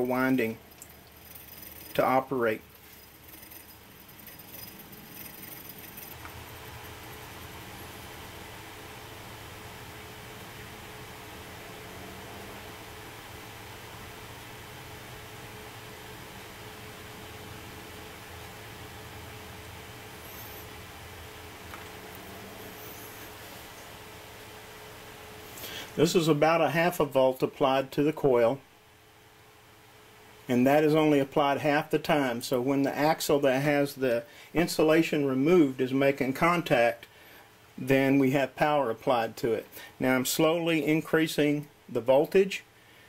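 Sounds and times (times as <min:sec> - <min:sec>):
small motor rattling and scraping: 0:00.0 - 0:08.1.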